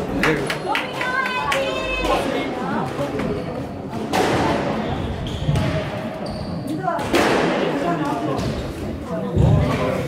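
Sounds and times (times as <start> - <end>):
squash ball hits: 7.0 - 7.8.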